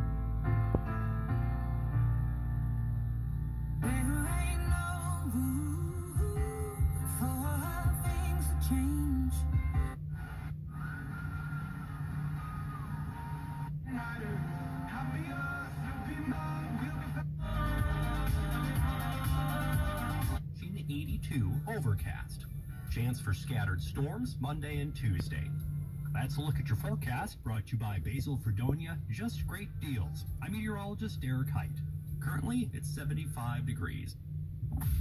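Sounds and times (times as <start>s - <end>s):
car radio music: 3.8s - 33.8s.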